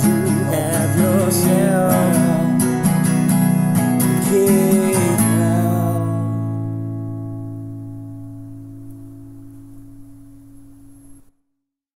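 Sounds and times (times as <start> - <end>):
guitar chord ringing out: 0.0 - 11.3.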